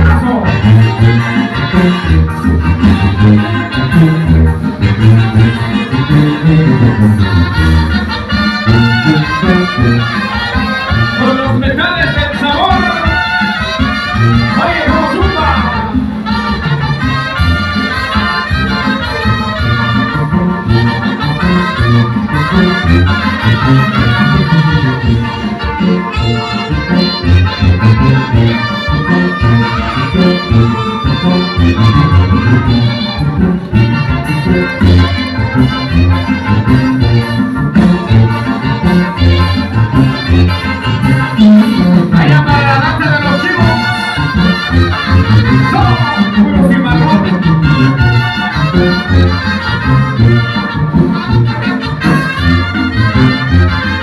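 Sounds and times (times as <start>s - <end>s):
brass playing tune: 0.0s - 54.0s
live band playing latin dance music: 0.0s - 54.0s.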